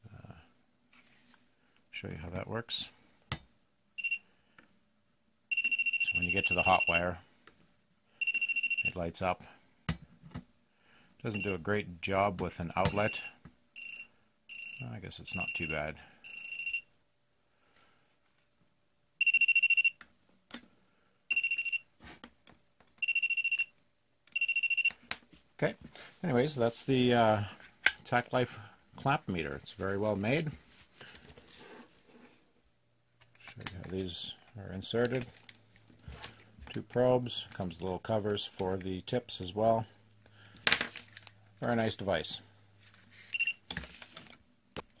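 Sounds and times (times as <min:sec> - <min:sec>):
voltage detector beeping: 0:05.5 - 0:07.0, 0:19.2 - 0:20.0, 0:21.3 - 0:21.8, 0:23.0 - 0:23.7.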